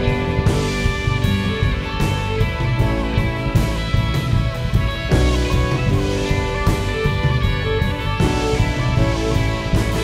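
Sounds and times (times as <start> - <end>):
drum kit: 0.0 - 10.0
guitar: 0.0 - 10.0.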